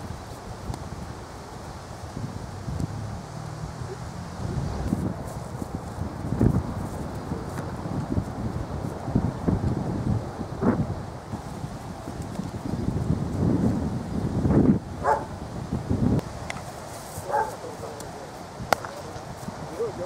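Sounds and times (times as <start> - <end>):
wind buffeting microphone: 0.0 - 20.0
sharp crack: 18.7 - 19.2.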